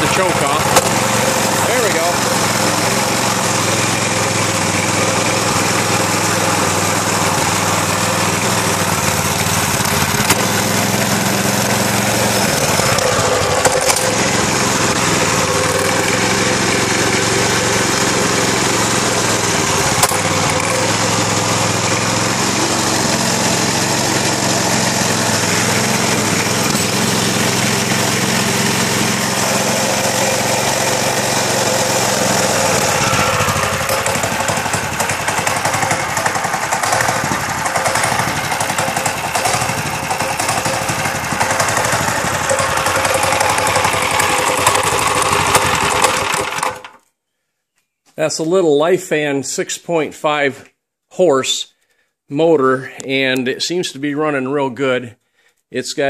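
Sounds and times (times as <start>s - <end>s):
small engine running: 0.0s - 47.0s.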